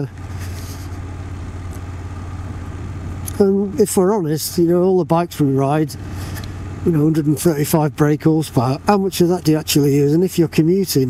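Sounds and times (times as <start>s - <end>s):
motorcycle engine droning: 0.0s - 11.0s
wind and road noise: 0.0s - 11.0s.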